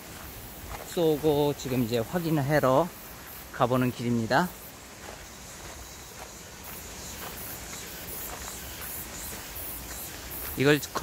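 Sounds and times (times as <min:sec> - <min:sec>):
footsteps on stony dirt path: 0:00.0 - 0:11.0.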